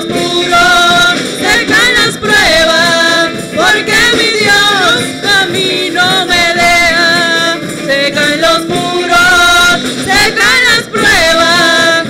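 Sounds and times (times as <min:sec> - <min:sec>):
live musical accompaniment: 0:00.0 - 0:12.0
women singing worship song: 0:00.0 - 0:12.0.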